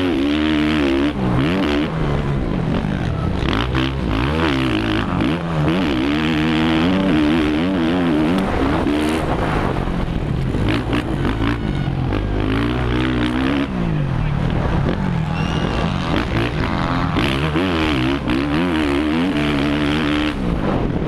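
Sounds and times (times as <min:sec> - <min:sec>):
motocross bike engine revving: 0:00.0 - 0:21.0
wind rush: 0:08.4 - 0:10.9, 0:20.3 - 0:21.0.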